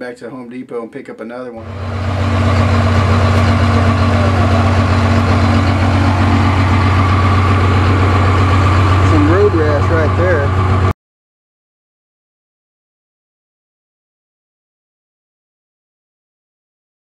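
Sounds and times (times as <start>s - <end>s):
diesel engine idling: 1.6s - 11.0s.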